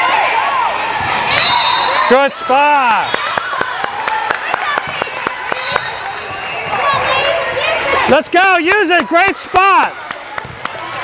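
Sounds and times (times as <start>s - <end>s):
crowd chatter: 0.0s - 11.0s
shoe squeaks: 5.6s - 7.0s
volleyballs hit and bouncing: 10.0s - 11.0s.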